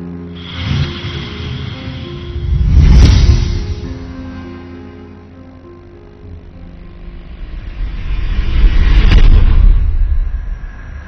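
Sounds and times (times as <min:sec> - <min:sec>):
deep rumbling: 0:00.0 - 0:11.0
rising rush of noise: 0:00.3 - 0:05.3, 0:06.5 - 0:11.0
heavy boom: 0:00.4 - 0:04.5.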